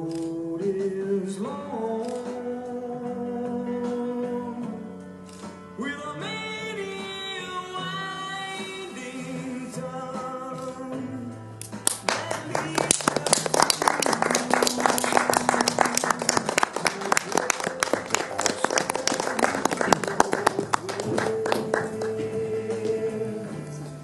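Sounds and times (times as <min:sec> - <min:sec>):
music with long held notes: 0:00.0 - 0:24.0
audience applauding: 0:11.8 - 0:23.1.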